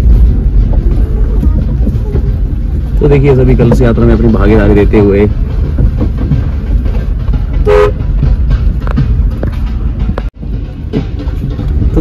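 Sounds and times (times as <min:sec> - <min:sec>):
car rumbling from inside cabin: 0:00.0 - 0:12.0
two-tone car horn beep: 0:07.6 - 0:08.0.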